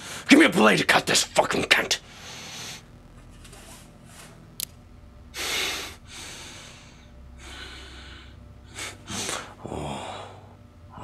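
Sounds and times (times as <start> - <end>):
low steady hum: 0.0 - 11.0
man breathing heavily: 5.3 - 10.6.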